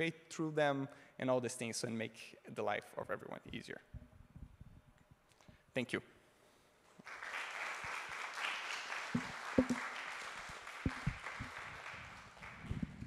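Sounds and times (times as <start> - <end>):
audience applauding: 7.0 - 13.0
dull low thuds: 10.9 - 11.2.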